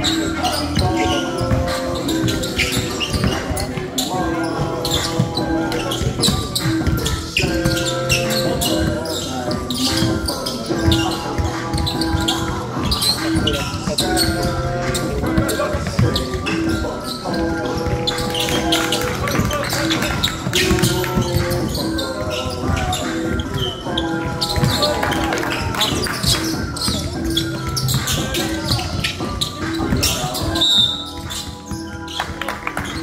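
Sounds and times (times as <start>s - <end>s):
basketball bouncing on court: 0.0s - 33.0s.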